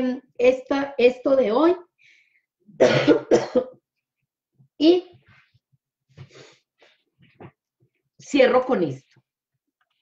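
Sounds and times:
woman coughing: 2.8 - 3.8.

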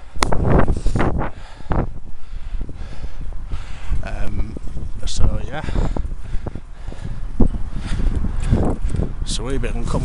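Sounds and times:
steady low rumble: 0.0 - 10.0
wind buffeting microphone: 0.0 - 10.0.

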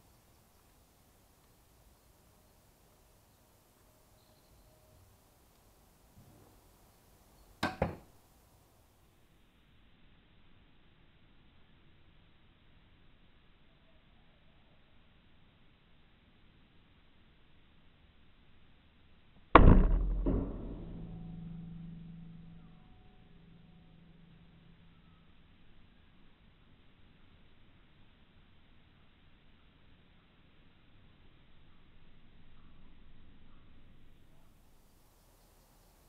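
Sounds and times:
bolt striking target: 7.6 - 8.1, 19.6 - 22.8
small knock: 7.6 - 8.1
low ringing hum: 9.0 - 36.0.

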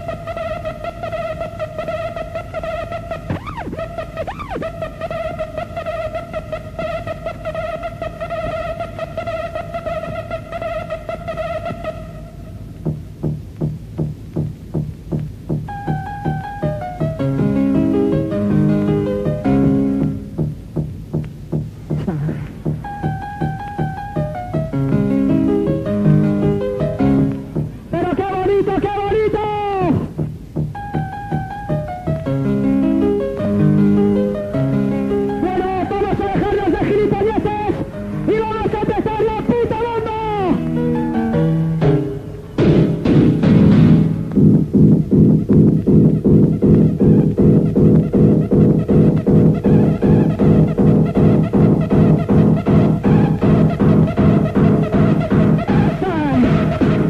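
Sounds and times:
piano riff and beat: 0.0 - 57.0
fast kick drum beat: 12.8 - 17.6, 18.8 - 25.0, 29.9 - 32.2, 42.6 - 57.0.

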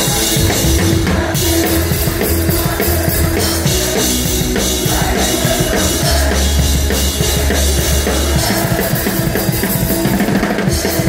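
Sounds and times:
fast drum beat: 0.0 - 11.0
punk rock band playing: 0.0 - 11.0
held low bass note: 0.4 - 2.0.

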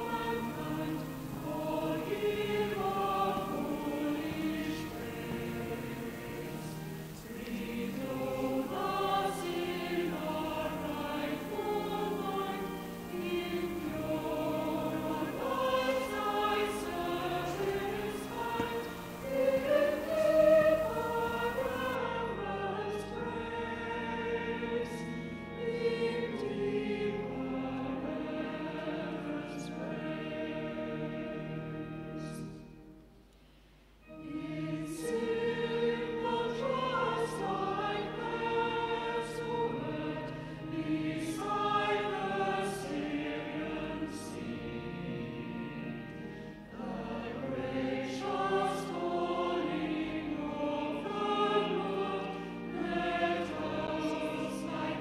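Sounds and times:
choir singing sustained chords: 0.0 - 55.0.

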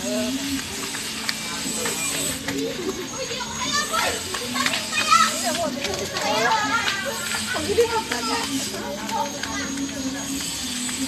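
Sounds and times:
people talking and calling out: 0.0 - 11.0.

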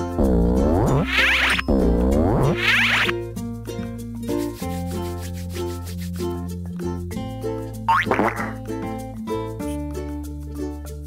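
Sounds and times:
bouncy children's music: 0.0 - 11.0
cartoon rising wobble effect: 0.2 - 3.1, 7.9 - 8.6.

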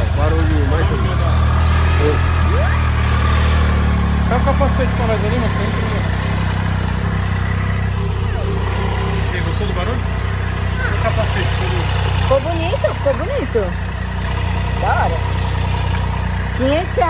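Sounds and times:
motorcycle engine idling: 0.0 - 17.0.

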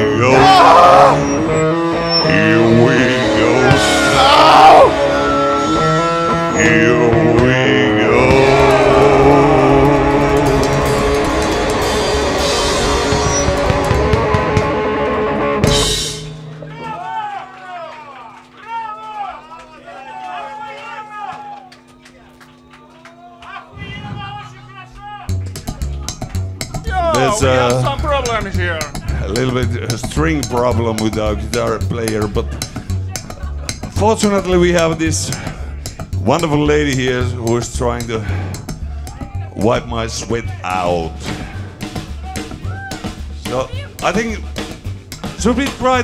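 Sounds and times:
electric guitar: 0.0 - 16.7
drum kit: 3.3 - 17.1, 23.8 - 46.0
crowd voices: 16.2 - 29.3.

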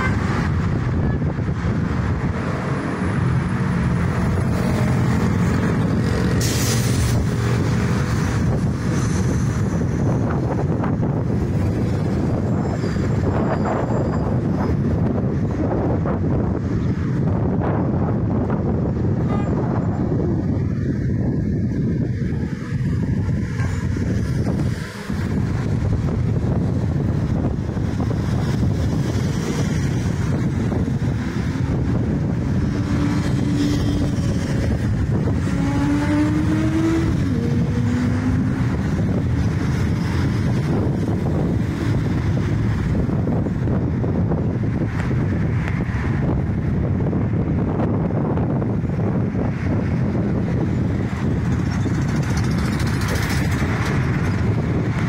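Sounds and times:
road traffic passing: 0.0 - 55.0
vehicle engine accelerating: 0.0 - 55.0
wind on microphone: 0.0 - 55.0.

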